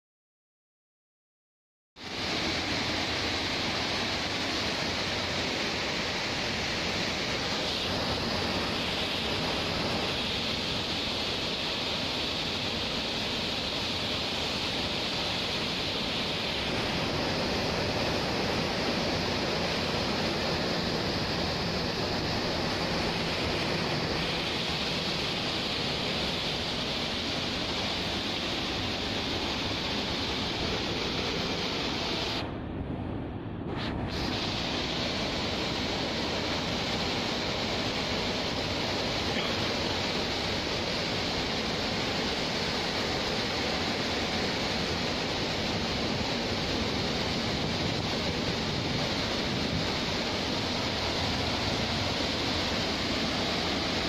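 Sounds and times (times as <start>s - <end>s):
heavy rain: 2.0s - 32.8s, 33.6s - 54.0s
strong wind: 2.0s - 54.0s.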